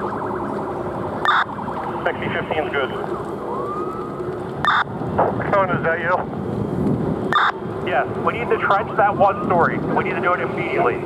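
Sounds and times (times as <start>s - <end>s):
background rushing noise: 0.0s - 11.0s
emergency vehicle siren: 0.0s - 11.0s.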